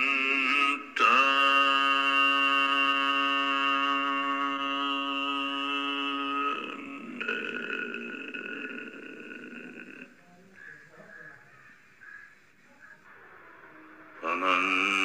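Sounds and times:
man chanting held note: 0:14.2 - 0:15.0.

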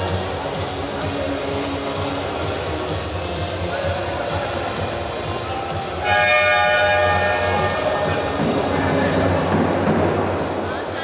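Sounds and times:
murmur of hall crowd: 0:00.0 - 0:11.0
loud game horn blast: 0:06.0 - 0:08.4.

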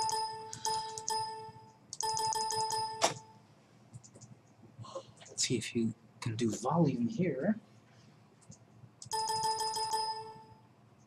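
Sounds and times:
electronic ding: 0:00.0 - 0:03.0.

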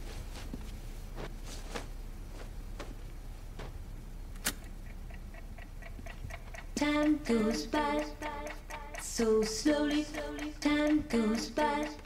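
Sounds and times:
clock ticking: 0:04.8 - 0:12.0
pop song: 0:06.6 - 0:12.0
woman singing: 0:06.7 - 0:12.0.

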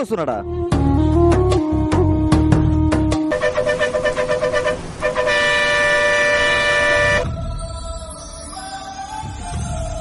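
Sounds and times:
quieter music: 0:00.0 - 0:10.0
low traffic rumble: 0:00.8 - 0:07.5
vehicle horn blast: 0:03.2 - 0:07.3.

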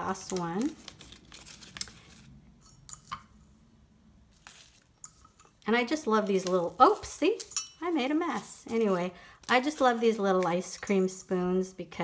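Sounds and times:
plastic sleeve crinkling: 0:00.0 - 0:02.4, 0:04.3 - 0:11.3.

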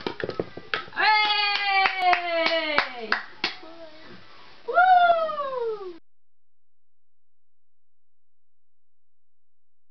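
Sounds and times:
person whooping: 0:04.7 - 0:06.0.

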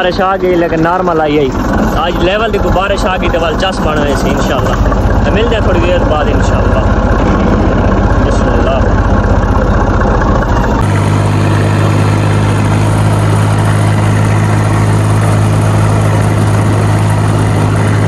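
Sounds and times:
tractor diesel engine running: 0:00.0 - 0:18.0.

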